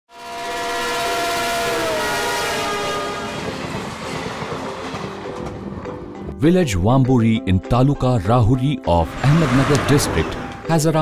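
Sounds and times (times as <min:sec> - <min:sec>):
locomotive horn: 0:00.1 - 0:04.6
train running rumble: 0:00.2 - 0:06.5, 0:08.9 - 0:11.0.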